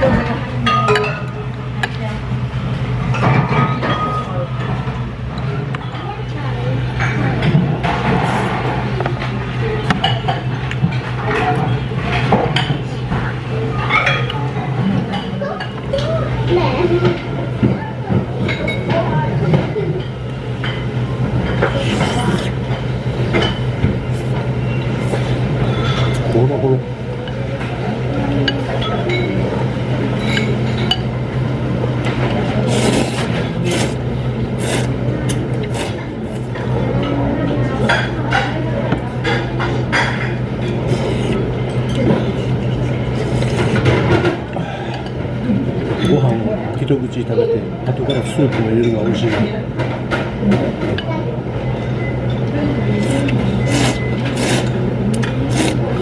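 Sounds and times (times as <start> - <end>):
tableware clinking: 0.6 - 2.0, 30.2 - 31.1
faint voices: 4.1 - 56.0.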